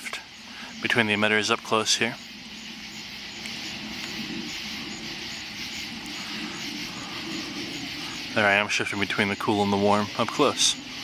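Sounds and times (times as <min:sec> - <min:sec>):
faint chirps: 0:00.0 - 0:11.0
insects hissing: 0:00.0 - 0:11.0
low steady rumble: 0:00.0 - 0:11.0.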